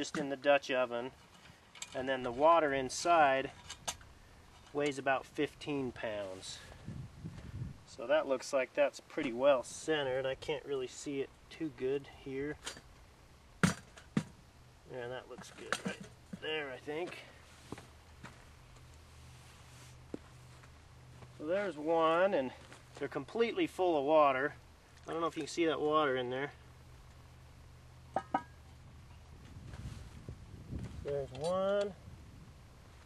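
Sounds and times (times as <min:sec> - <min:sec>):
footsteps on dry dirt: 0:17.0 - 0:23.0
metallic clinks of pot: 0:28.1 - 0:28.7.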